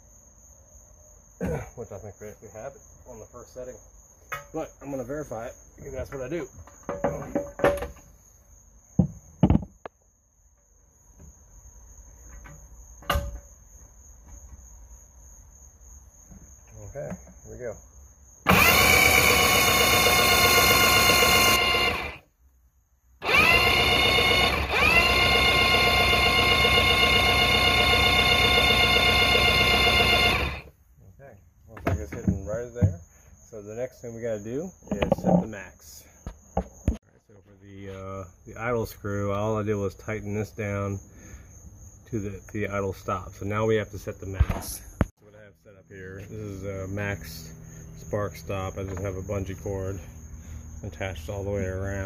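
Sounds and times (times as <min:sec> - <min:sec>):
electric starter cranking engine: 0:18.4 - 0:22.2, 0:23.2 - 0:30.7.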